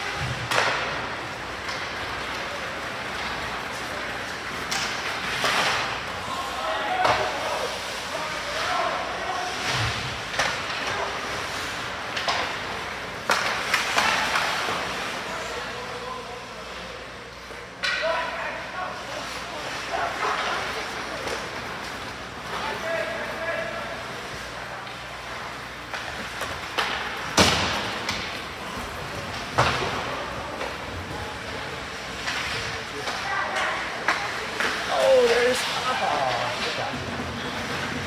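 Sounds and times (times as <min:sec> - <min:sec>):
puck and sticks cracking: 0:00.4 - 0:06.2, 0:12.0 - 0:15.0, 0:24.8 - 0:31.1, 0:31.9 - 0:35.8.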